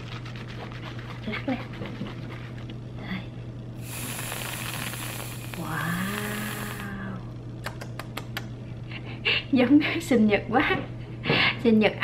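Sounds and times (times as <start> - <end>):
aerosol can spraying hiss: 3.8 - 6.9.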